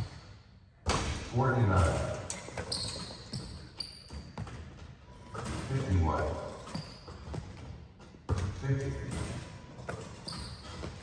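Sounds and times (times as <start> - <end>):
sneaker squeaks: 0.0 - 0.5, 1.7 - 11.0
basketball bouncing on hardwood floor: 1.8 - 5.7, 6.7 - 11.0.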